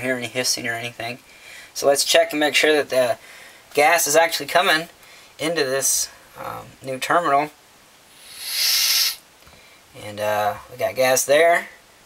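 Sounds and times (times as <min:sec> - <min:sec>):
gas hissing from fitting: 0:08.1 - 0:09.2.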